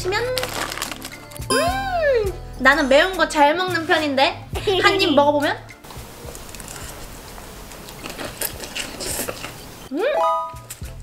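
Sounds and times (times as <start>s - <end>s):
crisp crunches: 0.1s - 1.5s
slurping and chewing: 6.3s - 9.7s.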